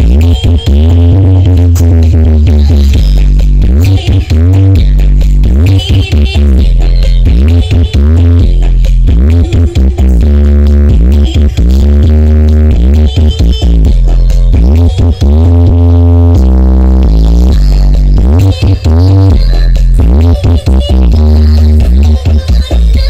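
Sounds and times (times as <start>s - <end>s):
heavy sub-bass: 0.0s - 23.0s
loud electronic dance music: 0.0s - 23.0s.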